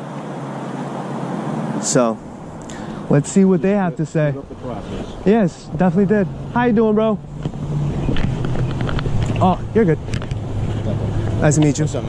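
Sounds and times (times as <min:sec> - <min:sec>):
outdoor noise: 0:00.0 - 0:12.0
man speaking: 0:01.8 - 0:07.3, 0:09.4 - 0:10.0, 0:10.9 - 0:12.0.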